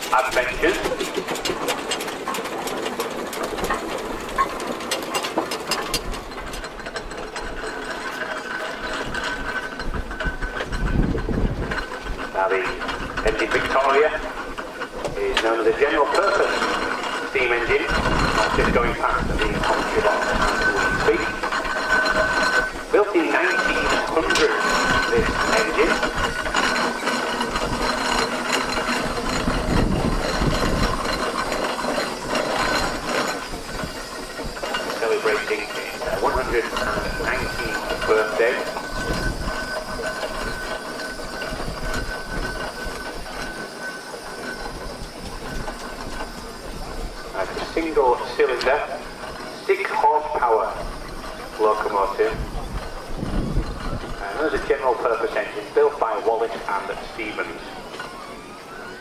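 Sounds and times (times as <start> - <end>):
steam traction engine running: 0.0 - 59.0.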